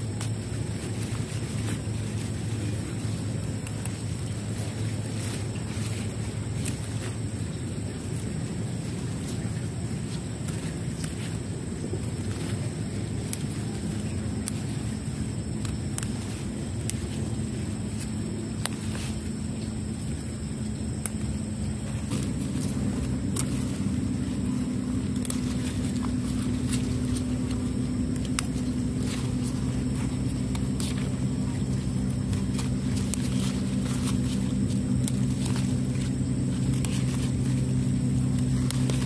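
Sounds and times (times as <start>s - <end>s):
wind rumble on microphone: 0.0s - 39.0s
plant shoots snapping: 3.5s - 4.8s, 12.2s - 19.4s, 20.9s - 21.3s, 22.0s - 39.0s
scissors snipping vines: 12.3s - 19.2s, 22.0s - 39.0s.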